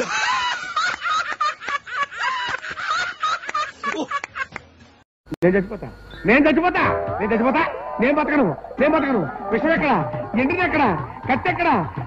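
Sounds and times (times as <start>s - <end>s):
men laughing heartily: 0.0s - 4.6s, 8.0s - 11.5s.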